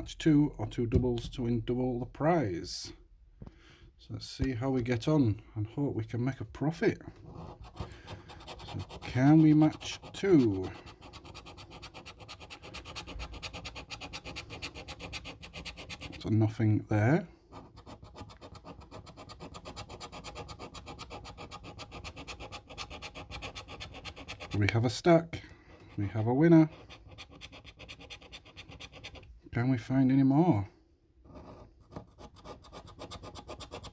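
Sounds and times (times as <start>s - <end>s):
coin scratching scratch card: 7.3s - 16.3s, 17.5s - 24.8s, 26.1s - 29.3s, 31.3s - 33.9s.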